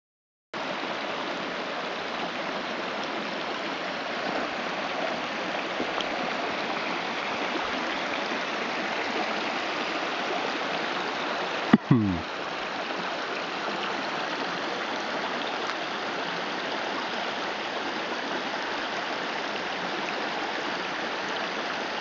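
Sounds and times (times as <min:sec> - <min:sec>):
stream running over rocks: 0:00.6 - 0:22.0.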